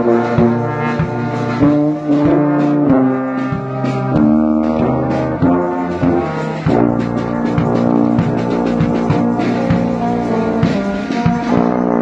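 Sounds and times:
marching brass band playing chords: 0.0s - 12.0s.

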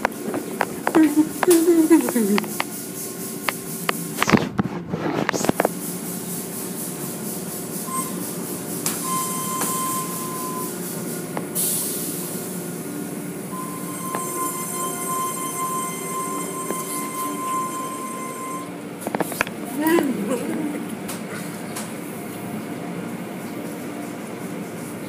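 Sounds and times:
car wash motors and brushes whirring: 0.0s - 25.0s
high whining tones: 7.9s - 10.8s, 13.5s - 19.0s.

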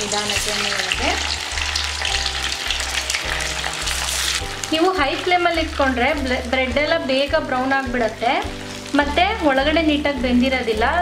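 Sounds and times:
oil sizzling while deep-frying: 0.0s - 11.0s.

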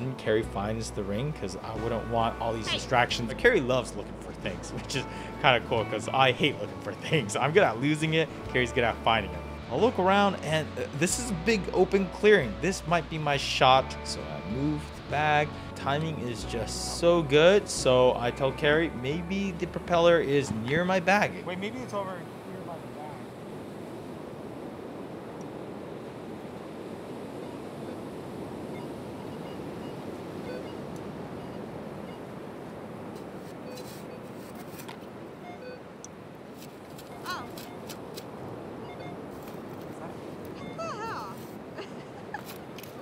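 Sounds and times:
ocean surf: 1.0s - 43.0s.

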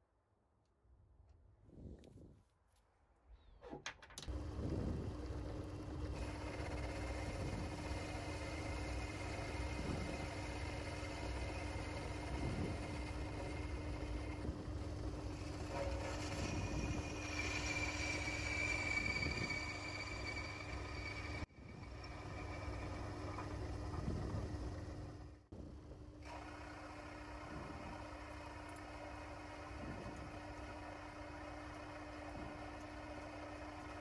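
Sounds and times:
lathe running hum: 4.3s - 25.5s, 26.2s - 34.0s
lathe cutting whine: 5.0s - 25.0s, 26.3s - 34.0s.

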